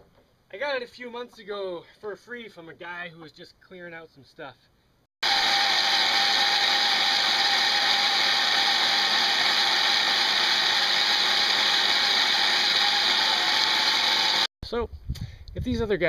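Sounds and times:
electric chainsaw cutting log: 0:05.2 - 0:14.5.

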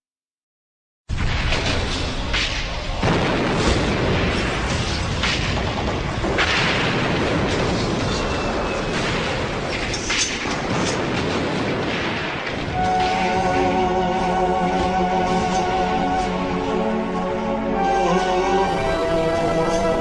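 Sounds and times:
explosions booming: 0:01.1 - 0:17.1
sharp blasts: 0:01.1 - 0:17.1.

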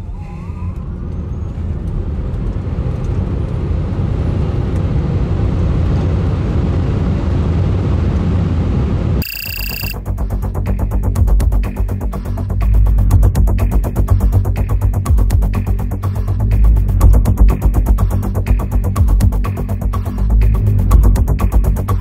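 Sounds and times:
wind and tyre roar in car cabin: 0:00.6 - 0:09.2
brief electronic beep: 0:09.2 - 0:10.0
electronic music with fast beat: 0:09.2 - 0:22.0.

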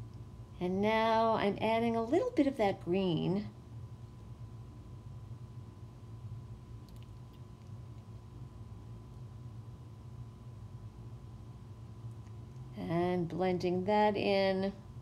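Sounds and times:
steady low hum: 0:00.0 - 0:15.0
faint light clicks: 0:06.8 - 0:08.1.

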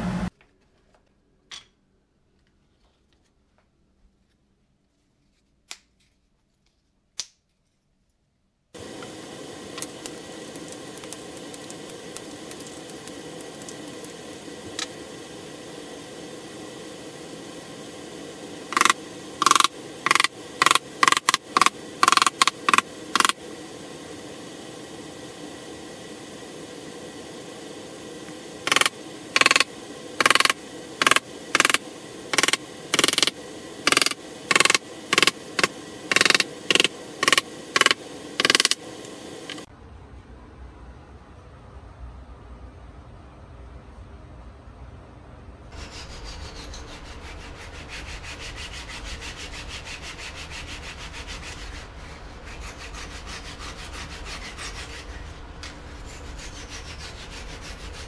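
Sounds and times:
steady shop hum: 0:00.0 - 0:58.0
air hiss: 0:08.8 - 0:39.7
pneumatic nailer firing: 0:18.7 - 0:23.4.

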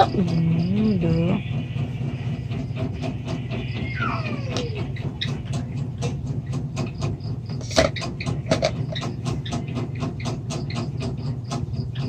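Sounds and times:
person speaking: 0:00.0 - 0:01.4
steady low hum: 0:00.0 - 0:12.0.

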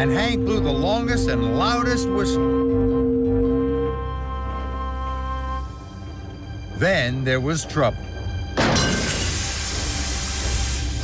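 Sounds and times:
steam hissing: 0:09.0 - 0:11.0.

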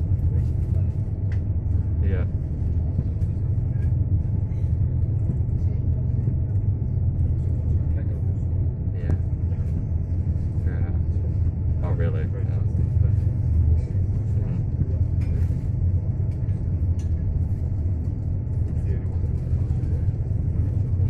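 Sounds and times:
boat engine rumbling: 0:00.0 - 0:21.0.

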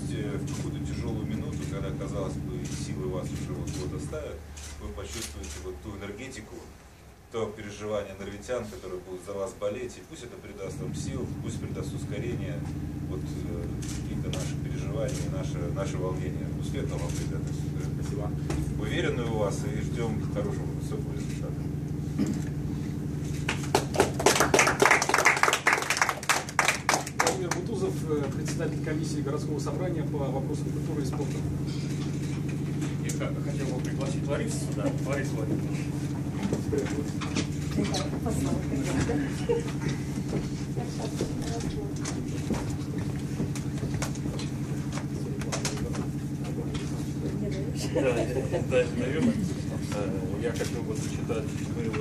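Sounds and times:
audience clapping: 0:23.3 - 0:27.7.

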